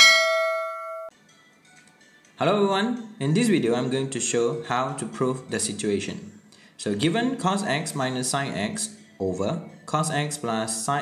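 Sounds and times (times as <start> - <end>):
bell-like chime ding: 0.0 - 1.1.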